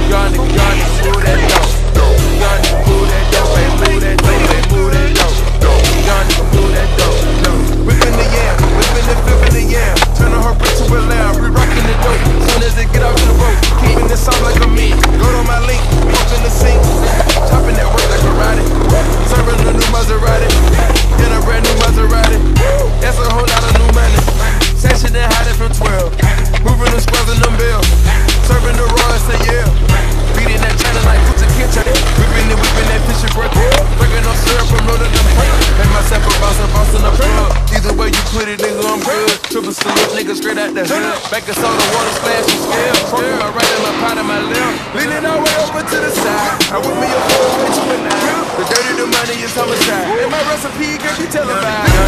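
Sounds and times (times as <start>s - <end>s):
music with heavy bass line: 0.0s - 50.3s
skateboard clacks: 0.0s - 52.0s
skateboard wheels rolling: 0.0s - 52.0s.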